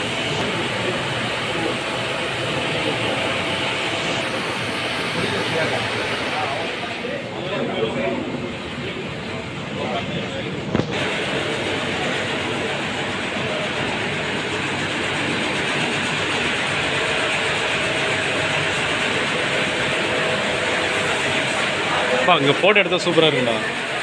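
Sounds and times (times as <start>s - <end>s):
bottling machinery running: 0.0s - 24.0s.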